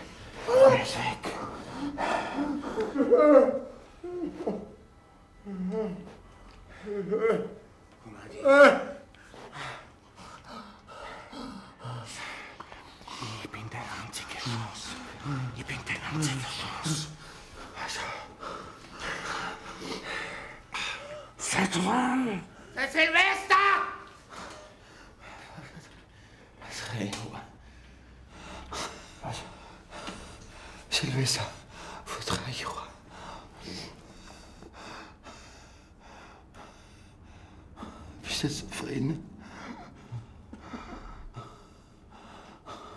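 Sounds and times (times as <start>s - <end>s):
person whispering: 0.4s - 1.7s, 13.0s - 18.4s
gasping breaths: 16.5s - 21.4s.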